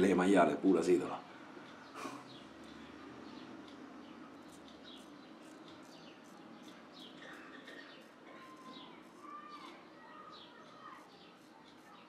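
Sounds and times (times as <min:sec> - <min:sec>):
birds chirping: 0:00.0 - 0:12.0
razor scraping stubble: 0:02.3 - 0:12.0.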